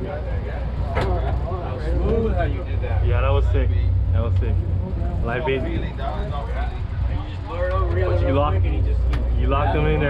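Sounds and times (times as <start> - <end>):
boat engine drone: 0.0 - 10.0
men talking: 0.0 - 10.0.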